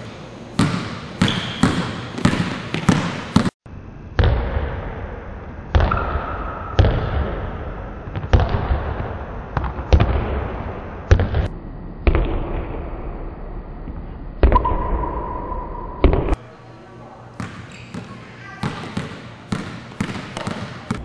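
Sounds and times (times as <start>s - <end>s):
basketball bouncing on wooden floor: 0.6s - 3.5s, 17.4s - 21.0s.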